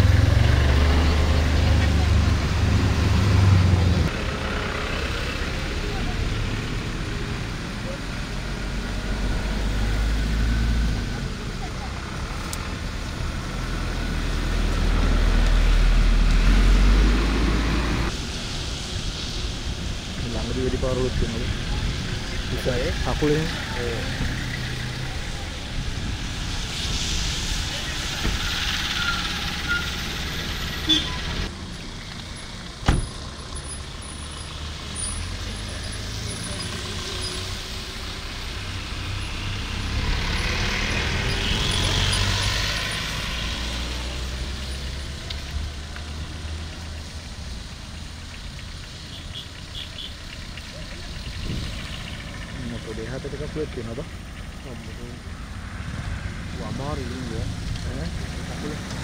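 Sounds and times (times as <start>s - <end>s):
traffic on a wet road: 0.0s - 59.0s.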